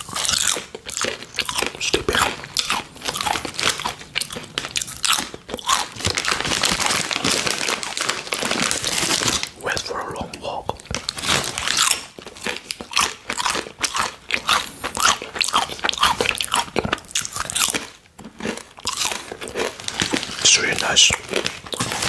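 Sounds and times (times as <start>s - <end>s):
crunching and chewing chips: 0.0s - 22.0s.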